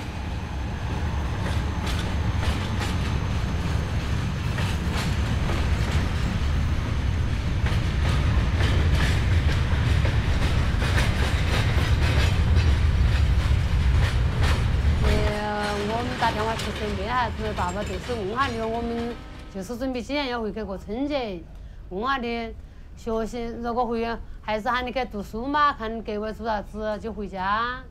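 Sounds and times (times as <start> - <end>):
train rumbling on rails: 0.0 - 27.9
wheels clacking over rail joints: 1.4 - 19.6.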